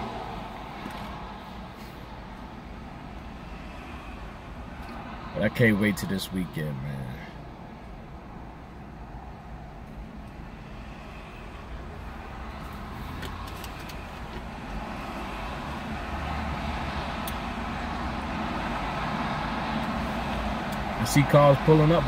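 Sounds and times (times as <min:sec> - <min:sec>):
car engine and tyre noise: 0:00.0 - 0:22.0.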